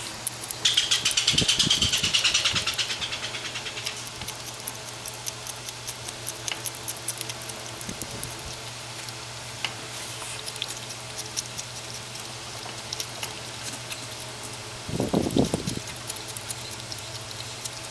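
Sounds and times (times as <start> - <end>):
animal shuffling in dry hay: 9.8 - 10.5.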